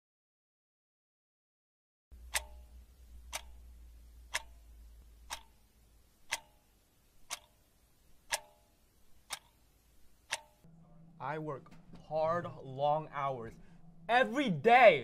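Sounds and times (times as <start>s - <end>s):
wall clock ticking: 2.1s - 10.7s.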